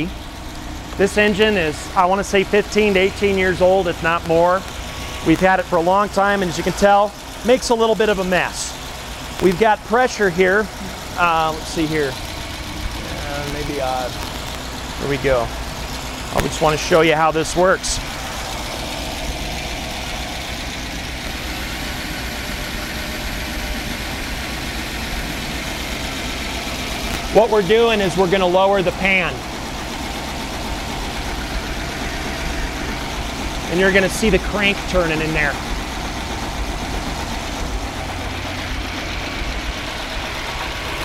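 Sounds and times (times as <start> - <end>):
engine idling: 0.0 - 41.0.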